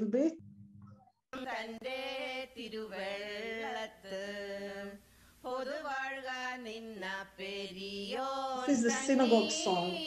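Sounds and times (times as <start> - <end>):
women singing a chant: 1.4 - 10.0.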